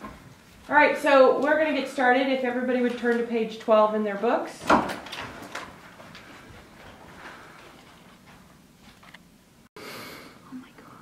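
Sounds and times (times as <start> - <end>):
person whispering: 10.3 - 11.0.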